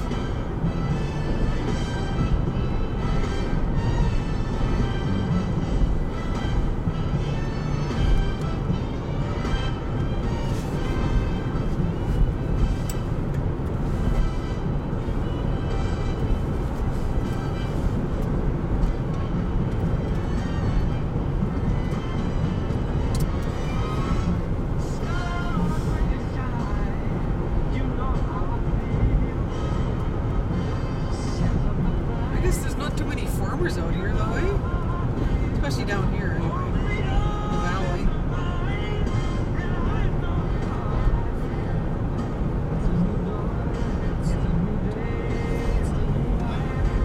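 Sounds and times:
car road and engine noise: 0:00.0 - 0:47.0
music with vocals: 0:00.0 - 0:47.0.

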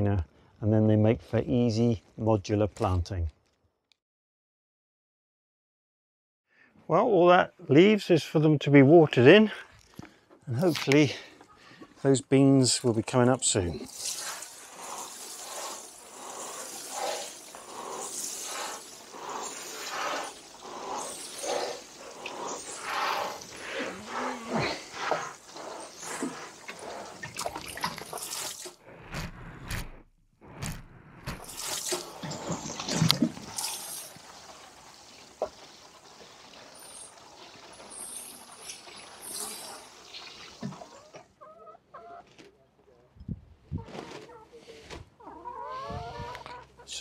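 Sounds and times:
water pouring onto compost: 0:13.5 - 0:28.8, 0:31.4 - 0:41.1.

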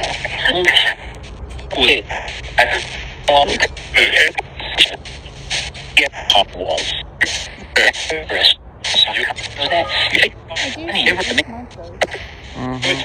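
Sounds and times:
clipped radio voice fragments: 0:00.0 - 0:13.0
radio static: 0:00.0 - 0:13.0.

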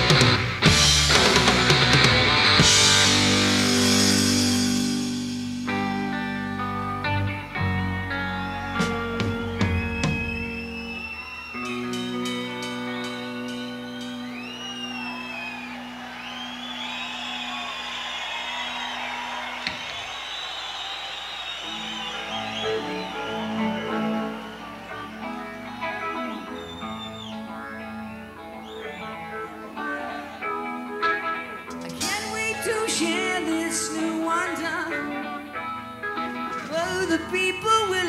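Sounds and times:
electric guitar bending notes: 0:21.6 - 0:37.4.

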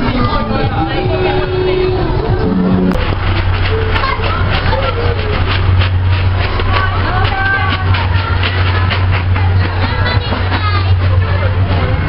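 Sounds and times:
lorry engine humming: 0:00.0 - 0:12.0
voices: 0:00.0 - 0:12.0.

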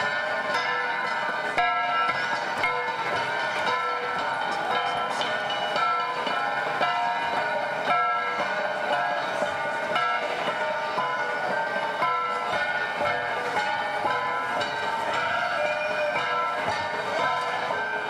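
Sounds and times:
bronze gongs ringing: 0:00.0 - 0:18.0.

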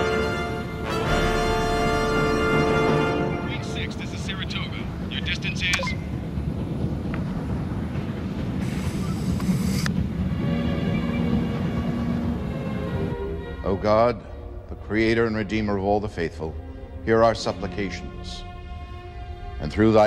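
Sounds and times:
faint orchestral music: 0:00.0 - 0:20.0
spacecraft engines rumbling: 0:00.0 - 0:20.0
muffled voices: 0:03.4 - 0:06.2
burst of hiss: 0:08.6 - 0:09.9.

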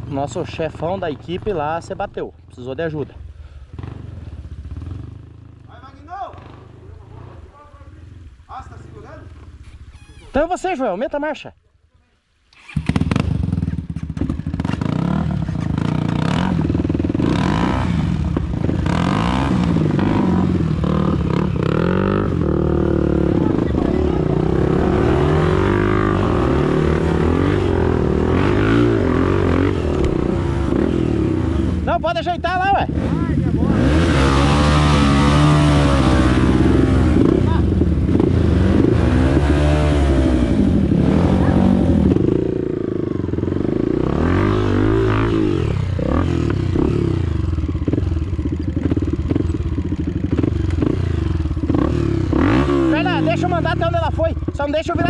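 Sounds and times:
motorcycle engines revving: 0:00.0 - 0:10.4, 0:12.6 - 0:55.0.

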